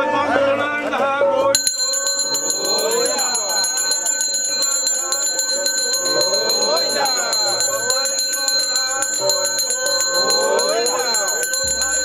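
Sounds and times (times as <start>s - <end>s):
hand bell ringing rapidly: 1.6s - 12.0s.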